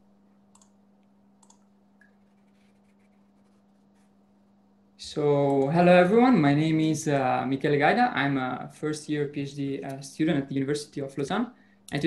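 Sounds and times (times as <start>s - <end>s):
faint steady hum: 0.0s - 12.0s
computer mouse clicks: 0.5s - 0.8s, 1.4s - 3.1s.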